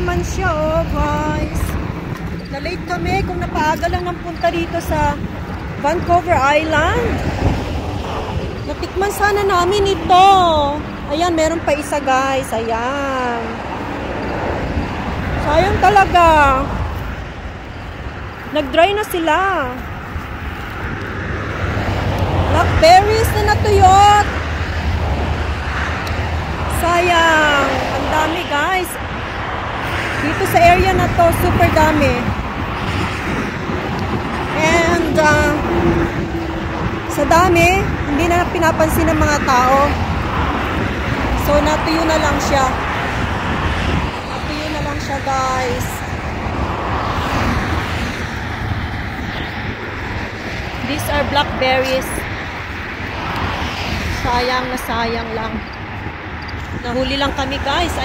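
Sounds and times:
passing motor vehicle: 0.0 - 58.0
rushing noise with low rumble: 0.0 - 58.0.

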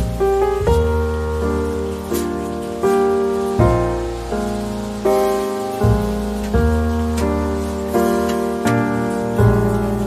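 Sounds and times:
gentle piano music: 0.0 - 10.0
soft even hiss: 0.0 - 10.0.

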